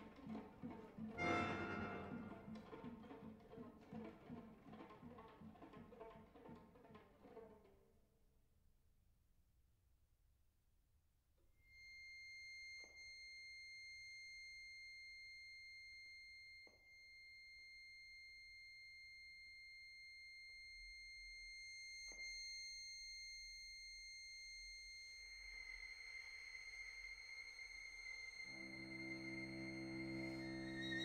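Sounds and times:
high thin held note: 1.2 - 2.6.

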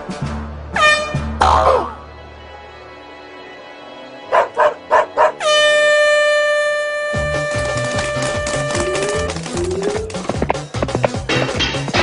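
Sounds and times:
cartoon horn blasts: 0.8 - 1.3, 5.4 - 9.3.

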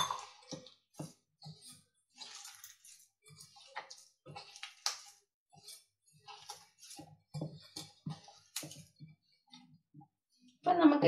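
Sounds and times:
hands squishing sticky dough: 0.4 - 11.0.

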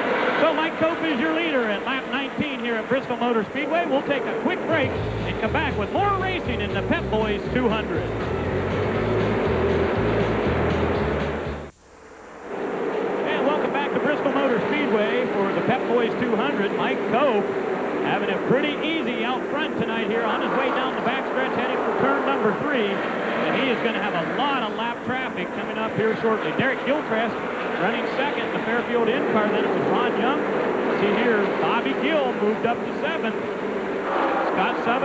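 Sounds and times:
race car engines passing: 0.0 - 11.7, 12.5 - 35.0
music with pulsing bass: 4.8 - 11.8.

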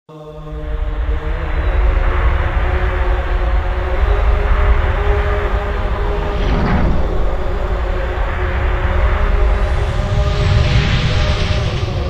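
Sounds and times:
cinematic drone with held tones: 0.2 - 12.0.

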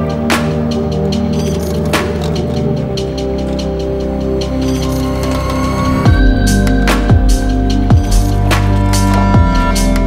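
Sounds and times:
low bass: 0.0 - 10.0
sustained music chords: 0.0 - 10.0.

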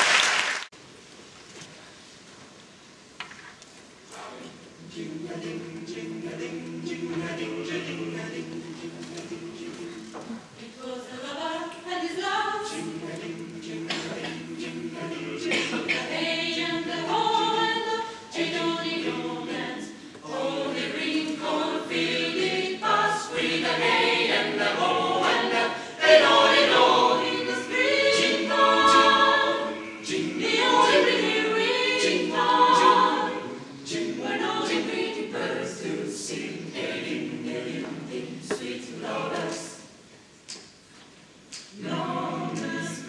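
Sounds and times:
choir singing a cappella: 4.8 - 40.1, 41.7 - 43.0.

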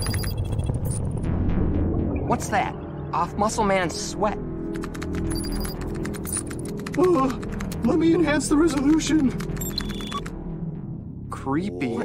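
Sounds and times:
rapid keyboard typing: 0.0 - 1.0, 4.7 - 10.3
short high electronic beeps: 0.0 - 1.1, 9.6 - 10.3
background music: 0.0 - 12.0.

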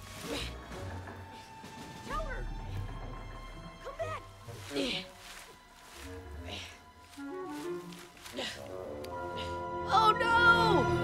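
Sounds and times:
low droning film score: 0.0 - 11.0.

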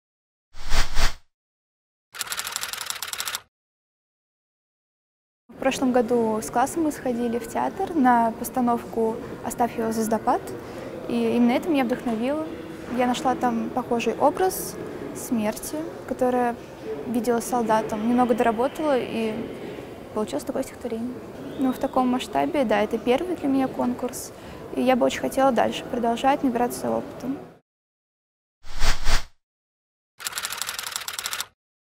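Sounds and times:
rapid typewriter-like clicks: 2.2 - 3.5, 30.2 - 31.6
typewriter key clicks: 30.2 - 31.5.

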